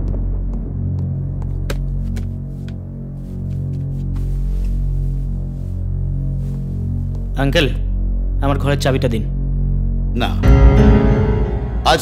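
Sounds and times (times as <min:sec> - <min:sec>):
footsteps on a tiled floor: 0:00.0 - 0:07.3
low droning film score: 0:00.0 - 0:12.0.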